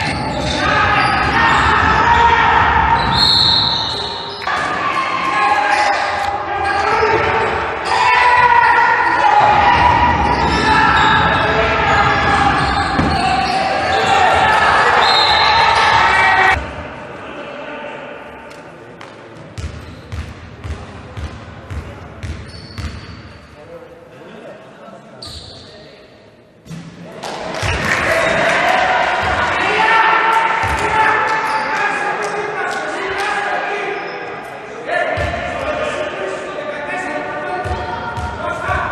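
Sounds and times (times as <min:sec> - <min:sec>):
people shouting in gym: 0:00.0 - 0:18.1, 0:27.9 - 0:34.0, 0:37.0 - 0:38.9
voices in a hall: 0:00.0 - 0:38.9
basketball bouncing on court floor: 0:19.6 - 0:23.1.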